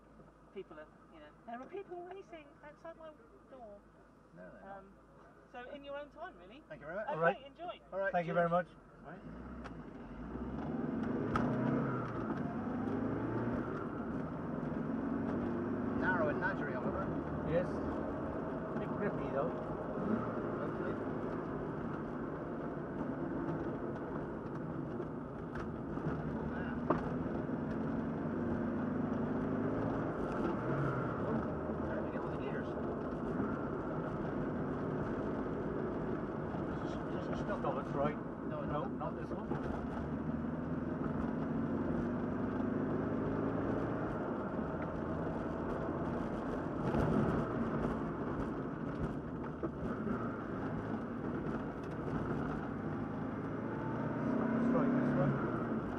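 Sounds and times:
road and tyre rumble: 0:00.0 - 0:55.9
car engine running: 0:05.6 - 0:55.9.

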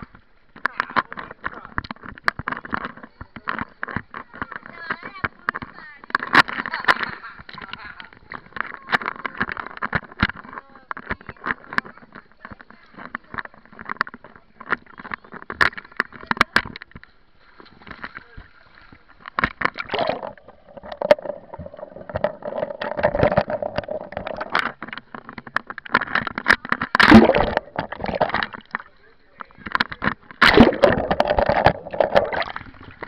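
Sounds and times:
pool water splashing: 0:11.9 - 0:33.0
sharp clicks and spatters: 0:19.0 - 0:33.0.

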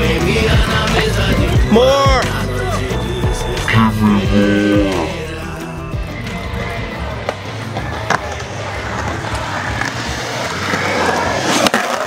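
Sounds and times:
skateboard wheels rolling on concrete: 0:00.0 - 0:03.2, 0:06.0 - 0:12.0
skateboard clacks: 0:07.1 - 0:12.0.

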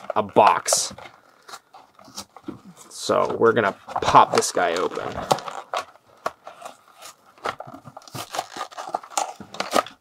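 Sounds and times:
blister package tearing and crinkling: 0:04.1 - 0:10.0.

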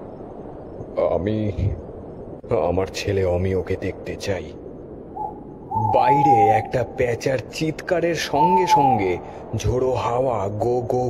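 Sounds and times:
owl-like hooting: 0:05.2 - 0:07.4, 0:08.2 - 0:09.4.

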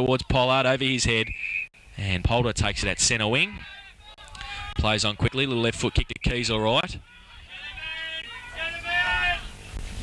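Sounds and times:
distant shouting voices: 0:03.5 - 0:09.7.

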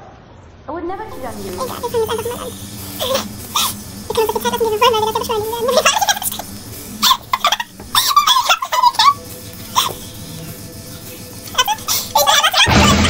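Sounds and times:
squeaky pitch-raised voices laughing: 0:00.9 - 0:13.0.

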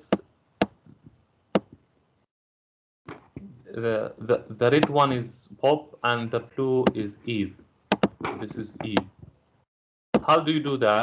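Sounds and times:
sharp dry mouse clicks: 0:07.9 - 0:09.1.

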